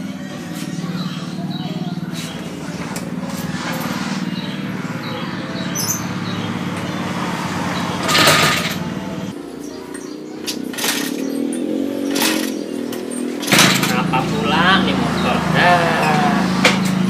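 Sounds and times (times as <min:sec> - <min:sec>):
motorbike engine running: 0:00.0 - 0:09.4, 0:10.6 - 0:17.0.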